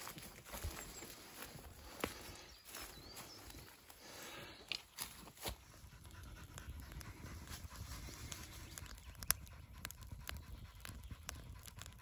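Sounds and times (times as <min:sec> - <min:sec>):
low fire rumble: 0:00.0 - 0:12.0
wood fire crackling: 0:00.0 - 0:12.0.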